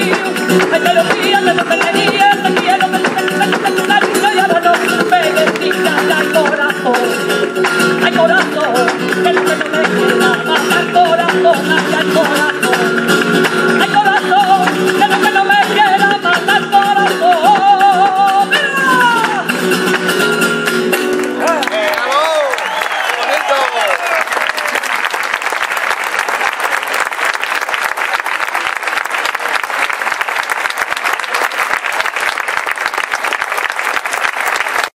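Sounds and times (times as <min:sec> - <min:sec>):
person singing: 0:00.0 - 0:19.7
flamenco guitar chords: 0:00.0 - 0:22.4
audience applause: 0:21.1 - 0:35.0
audience shouting and cheering: 0:21.3 - 0:32.1.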